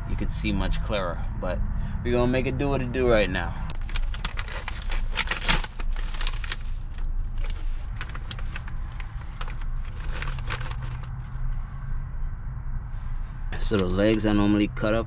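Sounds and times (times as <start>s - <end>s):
steady low hum: 0.0s - 14.8s
plastic bag crinkling: 3.7s - 11.2s.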